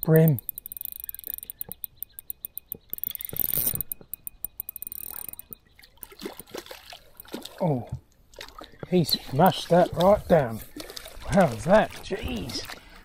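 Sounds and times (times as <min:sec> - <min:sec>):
fishing reel ticking: 0:00.0 - 0:06.1
fish splashing in water: 0:05.1 - 0:13.0.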